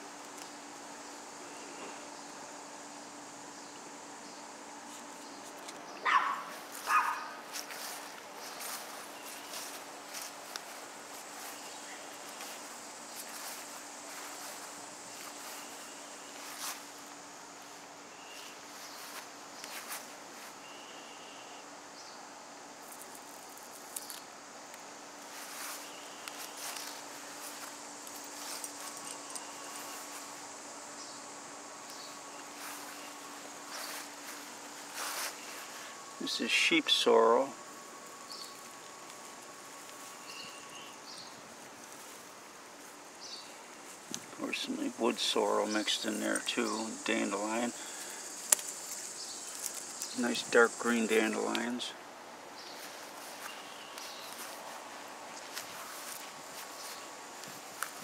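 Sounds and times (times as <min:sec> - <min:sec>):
dog barking: 0:06.0 - 0:07.4
small clicks and rustles: 0:22.8 - 0:30.3, 0:48.4 - 0:50.2.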